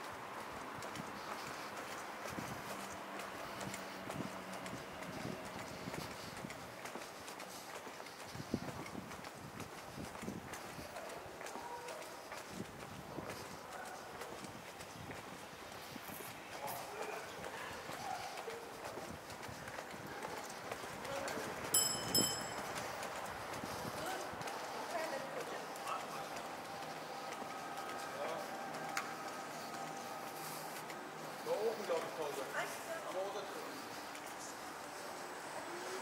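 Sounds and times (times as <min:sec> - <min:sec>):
footsteps on stone paving: 0:00.0 - 0:36.0
faint voices: 0:10.0 - 0:36.0
high ringing clink: 0:21.8 - 0:22.8.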